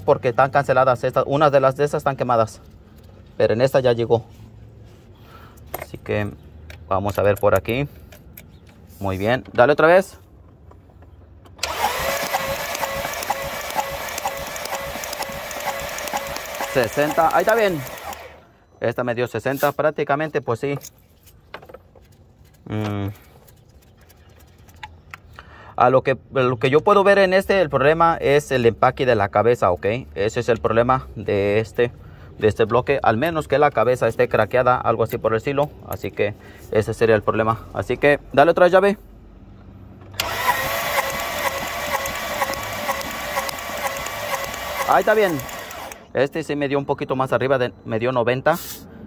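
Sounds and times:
starter motor cranking engine: 11.6s - 18.4s, 40.1s - 46.1s.

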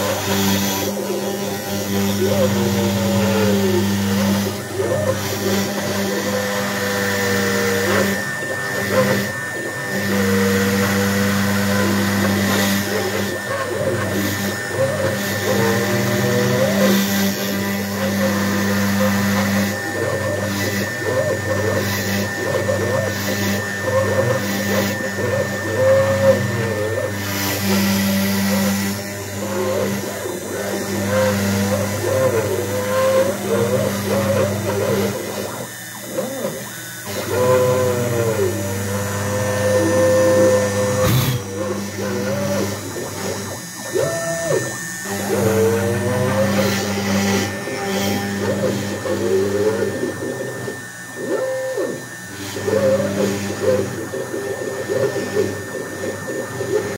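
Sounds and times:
router spindle high whine: 0.0s - 56.9s
stepper motors whining: 0.0s - 56.9s.

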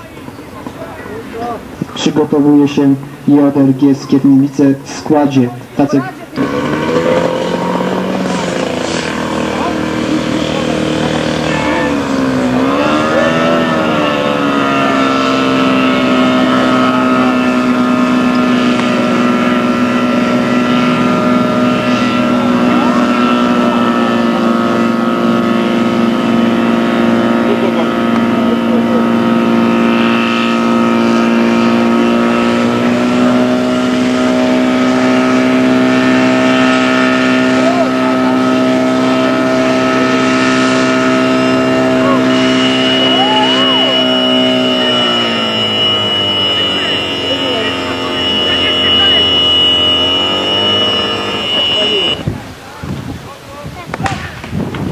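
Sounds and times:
fire pump engine running hard: 0.0s - 54.9s.

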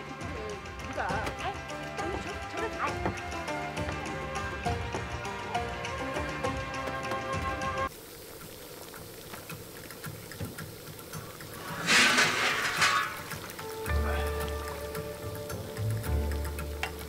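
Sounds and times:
background music with bass line: 0.0s - 7.9s, 13.4s - 17.0s
steam hissing: 0.0s - 17.0s.

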